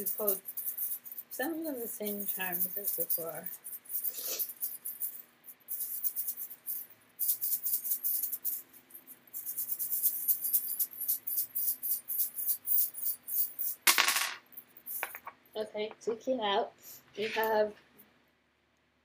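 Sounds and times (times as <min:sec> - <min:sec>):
small metal charms clinking: 0:00.0 - 0:15.3.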